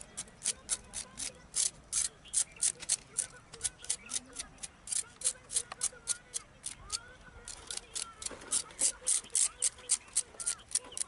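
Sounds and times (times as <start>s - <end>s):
stick scraping fish skin: 0.0s - 11.0s.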